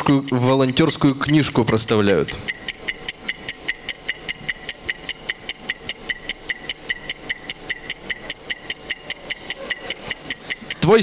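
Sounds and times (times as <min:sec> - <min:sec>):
electronic clock ticking: 0:00.0 - 0:11.0.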